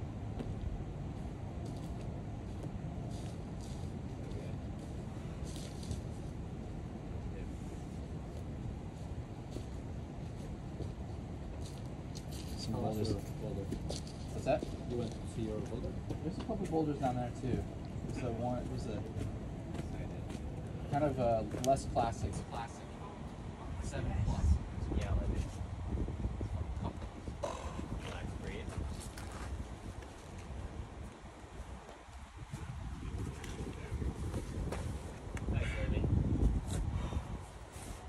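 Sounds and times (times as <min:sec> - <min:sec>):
low outdoor rumble: 0:00.0 - 0:38.0
wind buffeting microphone: 0:00.0 - 0:38.0.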